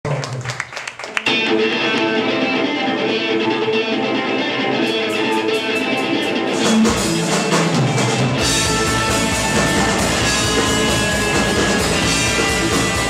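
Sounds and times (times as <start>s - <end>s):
electric guitar chords: 1.2s - 13.0s
bass guitar: 1.3s - 13.0s.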